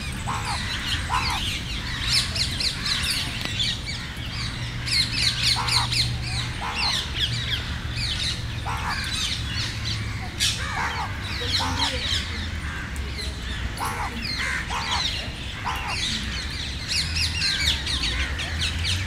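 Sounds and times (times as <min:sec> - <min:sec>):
parakeets chattering: 0:00.0 - 0:19.0.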